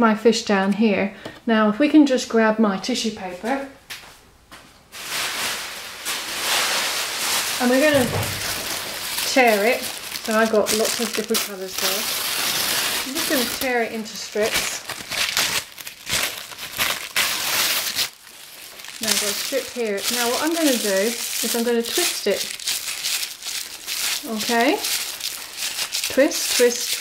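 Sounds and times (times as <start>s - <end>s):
tissue paper rustling: 4.9s - 27.0s.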